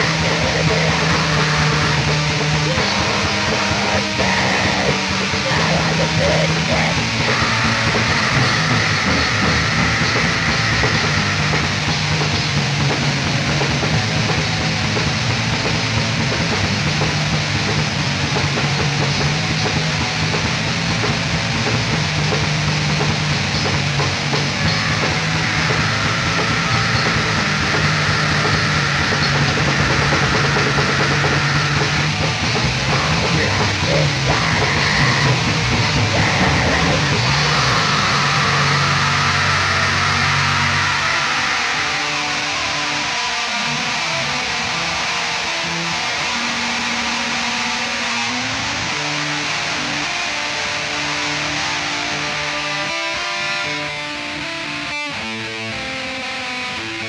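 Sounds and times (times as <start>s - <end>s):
distorted black metal band: 0.0s - 57.0s.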